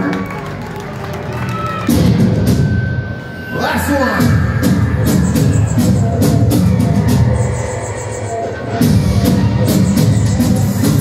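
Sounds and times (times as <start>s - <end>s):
crowd noise: 0.0s - 11.0s
rock band playing loudly: 4.2s - 11.0s.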